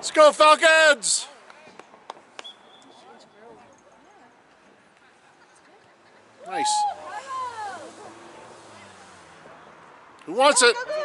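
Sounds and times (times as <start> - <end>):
distant voices of players and spectators: 0.0 - 11.0.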